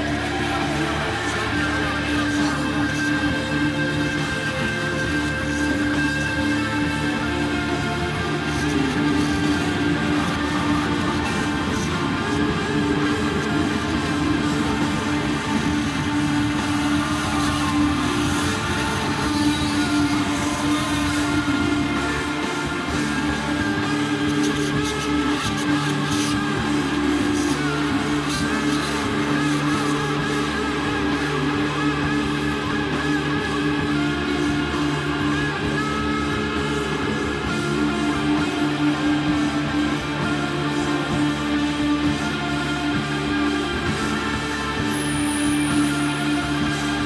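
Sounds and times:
bass: 0.0 - 47.0
drums: 0.0 - 47.0
electric guitar: 0.0 - 47.0
keyboards: 0.0 - 47.0
live rock band playing: 0.0 - 47.0.

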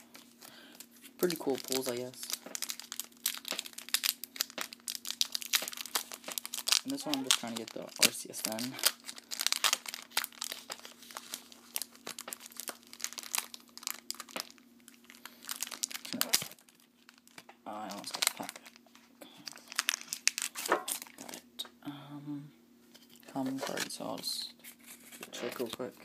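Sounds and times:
foil wrapper crinkling and tearing: 0.0 - 21.4.

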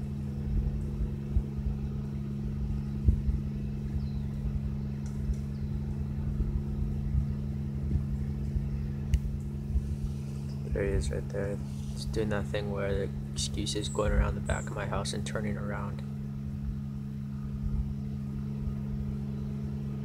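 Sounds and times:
propeller plane engine droning: 0.0 - 20.0.

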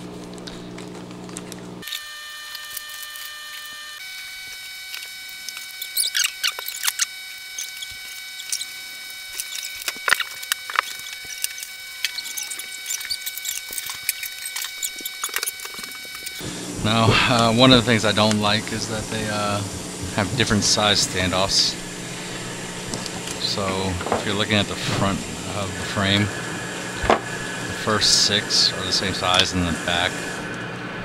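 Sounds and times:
scissors cutting bag: 0.0 - 16.4
small parts clicking: 1.8 - 3.8, 4.5 - 16.4
high multi-tone whine: 1.8 - 31.0
plastic bags crinkling: 4.5 - 16.4.

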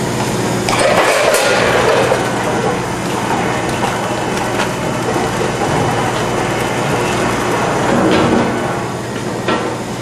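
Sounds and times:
low machine hum: 0.0 - 10.0
machinery clattering: 0.6 - 10.0.

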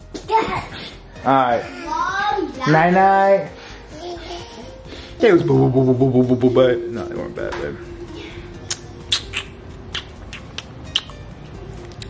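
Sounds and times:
kissing lip smacks: 8.6 - 11.2, 11.8 - 12.0.

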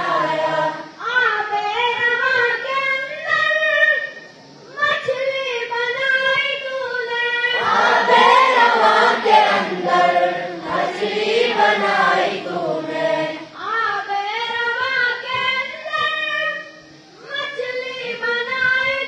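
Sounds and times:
lone voice chanting: 0.0 - 0.9, 7.6 - 13.5
boys chanting in unison: 0.0 - 3.1, 6.3 - 13.8.

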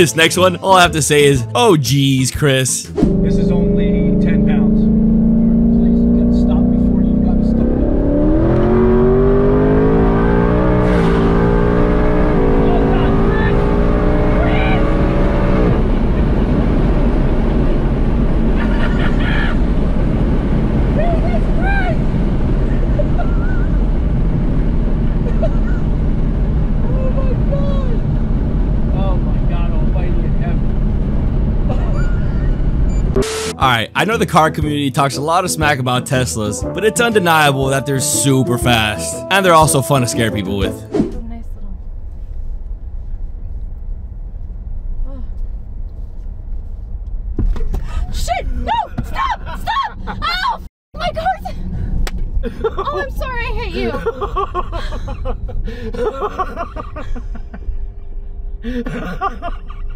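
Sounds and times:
passenger shouting and laughing: 0.0 - 4.6, 12.4 - 16.6, 18.4 - 19.9, 20.6 - 24.3, 25.1 - 28.2, 31.6 - 32.9, 33.6 - 41.4, 47.8 - 59.9
car engine accelerating: 2.8 - 34.6
road and wind noise: 2.9 - 33.5, 40.8 - 59.9.

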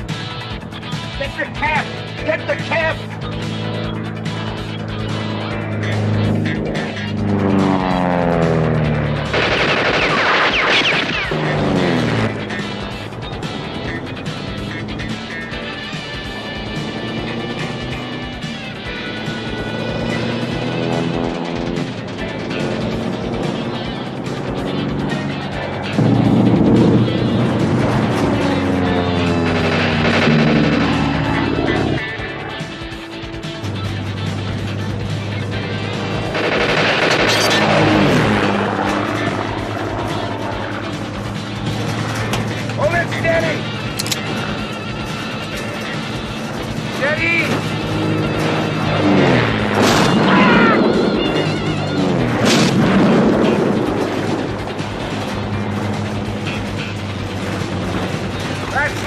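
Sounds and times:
truck engine revving: 0.0 - 59.0.

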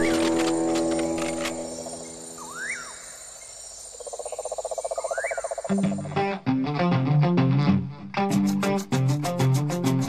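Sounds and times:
swooping chirps: 1.0 - 3.2
plucked guitar-like notes: 5.8 - 10.0.

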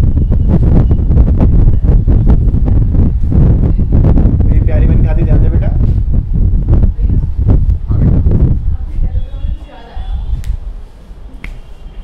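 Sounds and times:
low rumble of room noise: 0.0 - 12.0.

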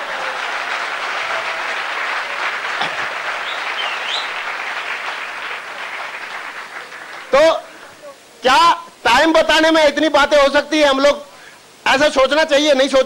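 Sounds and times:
audience applauding: 0.0 - 8.0.

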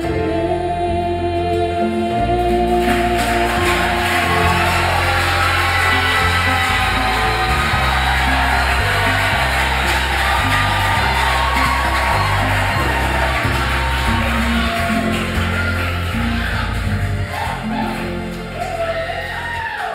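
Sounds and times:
bass line: 0.0 - 19.7
sustained keyboard chords: 0.0 - 19.8
crowd noise: 0.0 - 19.9.

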